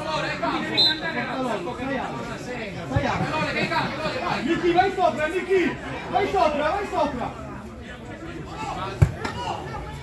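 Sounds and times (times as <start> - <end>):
faint spectators' voices: 0.0 - 10.0.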